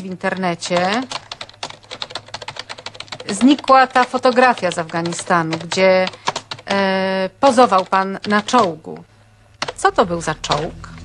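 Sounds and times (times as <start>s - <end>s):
computer keyboard typing: 0.2s - 9.0s, 9.6s - 10.8s.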